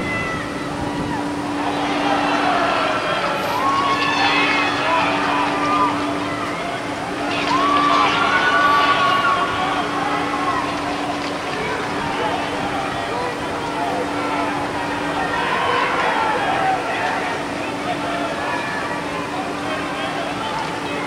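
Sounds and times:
players and spectators shouting: 0.0s - 21.0s
steady low hum: 0.0s - 21.0s.

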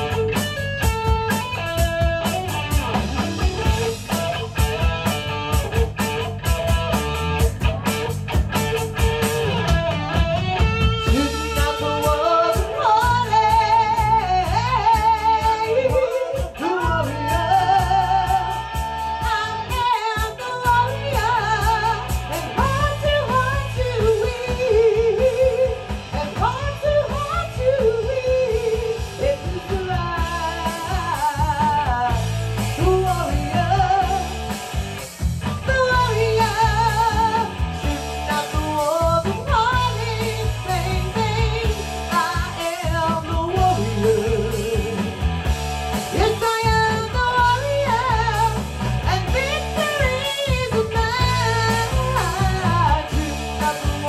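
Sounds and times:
live rock band playing: 0.0s - 54.0s
woman singing: 10.9s - 34.6s, 35.5s - 45.2s, 46.0s - 54.0s.

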